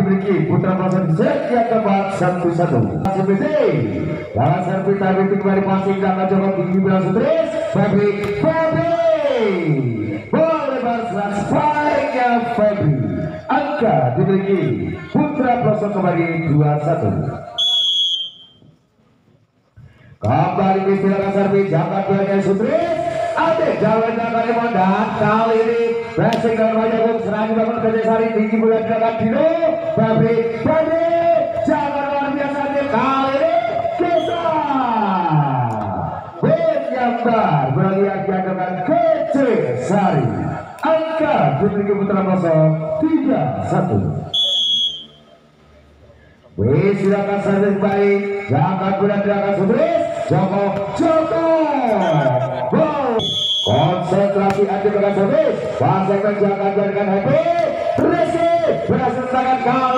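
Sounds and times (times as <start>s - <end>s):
referee's whistle blast: 17.6s - 18.7s, 34.1s - 34.6s, 44.3s - 45.4s, 51.9s - 52.3s, 53.2s - 54.0s.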